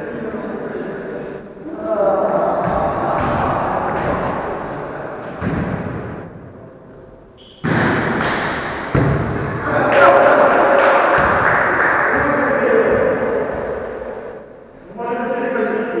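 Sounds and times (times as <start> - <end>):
players' voices: 0.0 - 16.0
volleyball thuds: 2.6 - 6.3, 7.4 - 9.6, 10.8 - 11.5.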